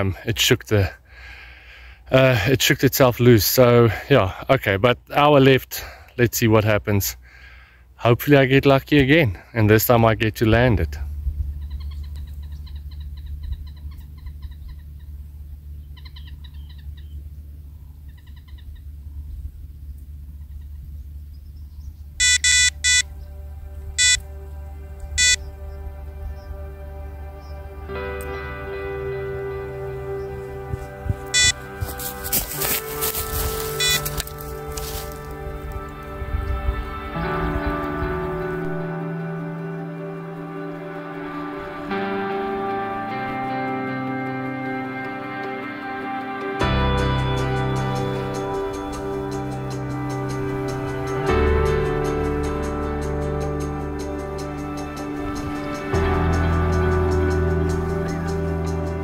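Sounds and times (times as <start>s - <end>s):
steady low hum: 10.4s - 37.3s
birds chirping: 11.4s - 39.0s
bite alarm beeps: 22.2s - 23.1s, 24.0s - 24.2s, 25.2s - 25.4s, 31.3s - 31.6s, 33.7s - 34.4s
soft background music: 22.2s - 59.0s.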